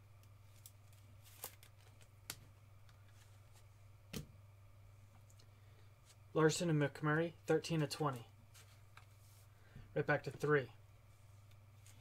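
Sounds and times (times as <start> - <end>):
steady low hum: 0.0 - 12.0
trading cards being handled: 0.2 - 4.3, 8.0 - 9.5.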